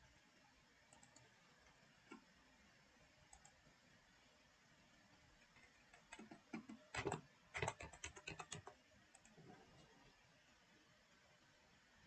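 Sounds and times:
computer mouse clicks: 0.9s - 1.3s, 3.3s - 3.6s, 5.6s - 9.4s.

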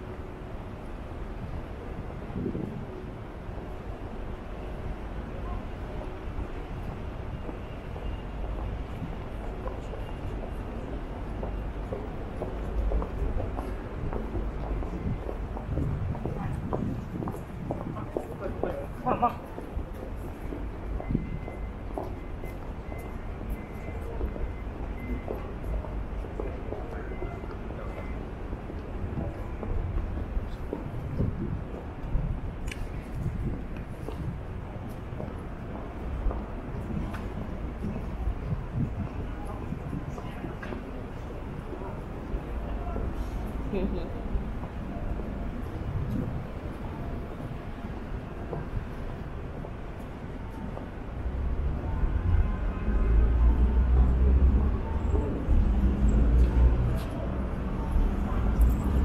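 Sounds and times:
low rumble of road traffic: 0.0s - 59.0s
passers-by talking: 8.7s - 59.0s.

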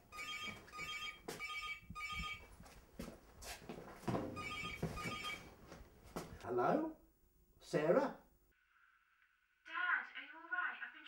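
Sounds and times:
phone ringtone trilling beeps: 0.1s - 2.5s, 4.4s - 5.4s.

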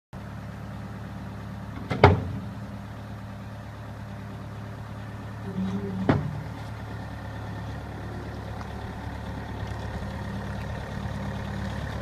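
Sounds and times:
diesel engine running: 0.2s - 12.0s
sharp metallic clunks: 1.8s - 2.5s, 5.5s - 6.5s.

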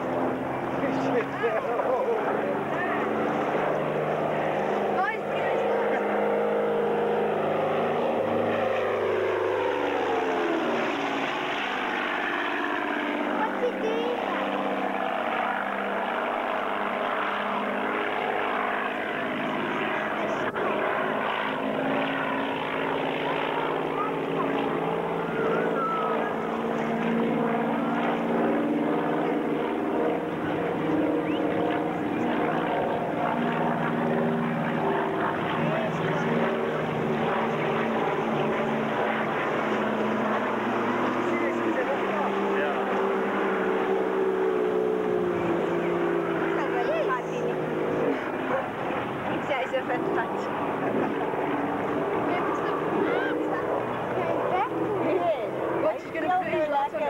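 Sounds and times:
propeller plane droning overhead: 0.0s - 57.0s.

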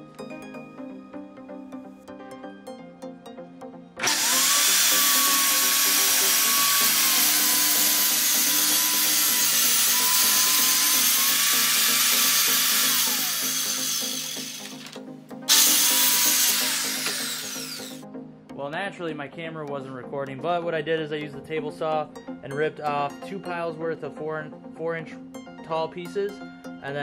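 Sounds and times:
background music: 0.0s - 27.0s
circular saw cutting plywood: 4.0s - 18.0s.

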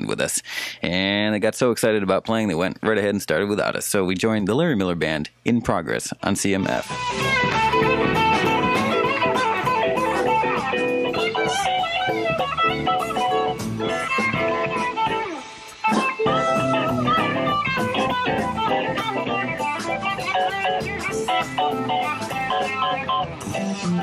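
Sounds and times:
electric guitar: 6.7s - 24.0s
rock band playing live: 6.8s - 24.0s.

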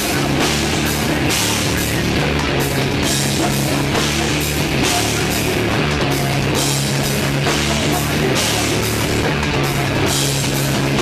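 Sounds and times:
drum kit pounding: 0.0s - 11.0s
rock band playing live: 0.0s - 11.0s.

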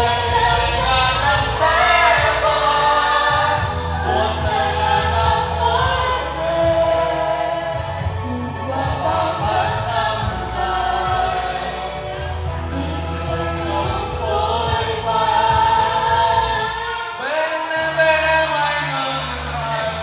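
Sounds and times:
backing track with bass line: 0.0s - 20.0s
group singing pop song: 0.0s - 20.0s.

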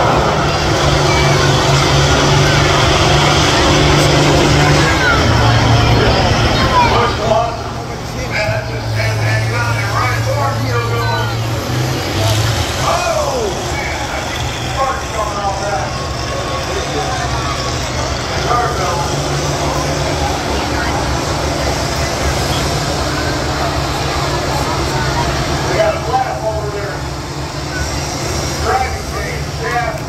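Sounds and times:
combine harvester engines droning: 0.0s - 30.0s
people talking: 0.0s - 30.0s.

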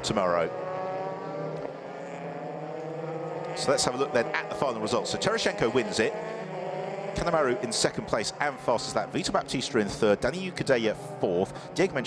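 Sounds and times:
race car engine steady drone: 0.0s - 12.0s.

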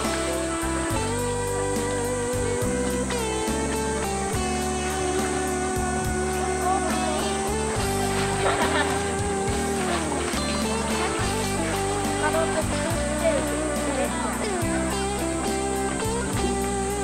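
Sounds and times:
instrumental music with held notes: 0.0s - 17.0s.

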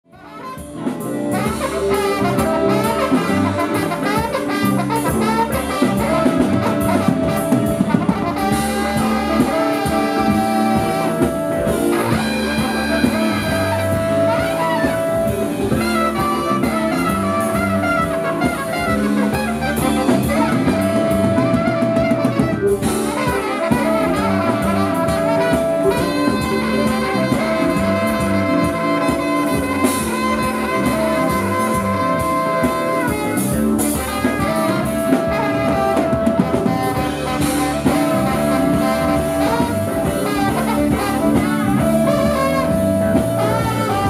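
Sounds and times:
drum kit: 0.0s - 44.0s
electric guitars: 0.0s - 44.0s
trombone: 0.0s - 44.0s
trumpet: 0.0s - 44.0s
saxophones: 0.1s - 44.0s.

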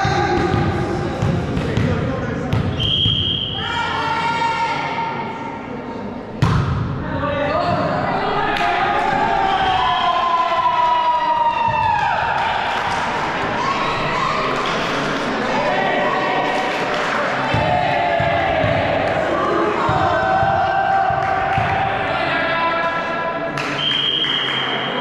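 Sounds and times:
volleyball bouncing on gym floor: 0.3s - 3.2s, 6.4s - 6.9s
referee's whistle blast: 2.7s - 3.6s
players shouting in a hall: 3.4s - 5.5s, 7.3s - 25.0s.

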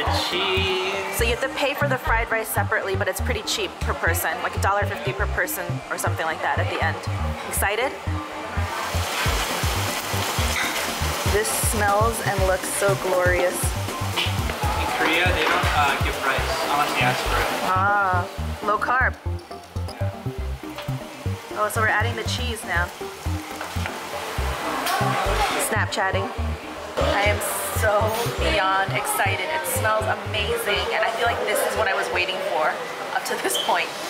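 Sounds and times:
background music with beat: 7.1s - 29.3s
food sizzling in a pan: 8.6s - 18.9s, 33.3s - 34.0s.

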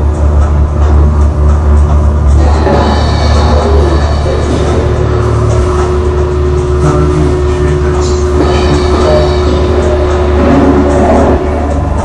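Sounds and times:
dense low rumble: 0.0s - 12.0s
experimental electronic music: 0.0s - 12.0s
steady held tone: 0.0s - 12.0s.

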